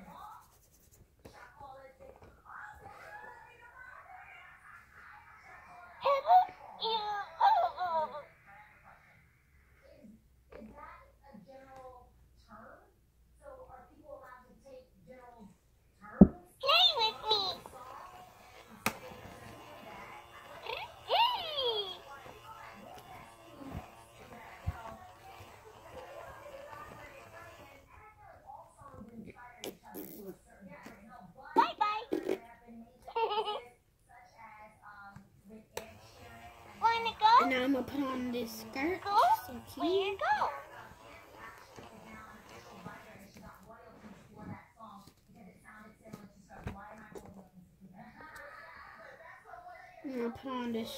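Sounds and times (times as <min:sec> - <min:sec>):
hands rubbing plastic doll: 0:00.0 - 0:01.6, 0:16.6 - 0:27.8, 0:35.8 - 0:44.4
high-pitched baby doll sounds: 0:06.0 - 0:08.4, 0:16.6 - 0:17.8, 0:19.1 - 0:22.4
faint murmured speech: 0:16.6 - 0:50.9.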